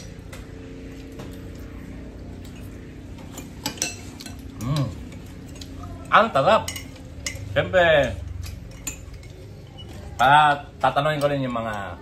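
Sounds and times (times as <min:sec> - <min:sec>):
steady low hum: 0:00.0 - 0:12.0
spoon clinking on bowl: 0:03.3 - 0:10.2.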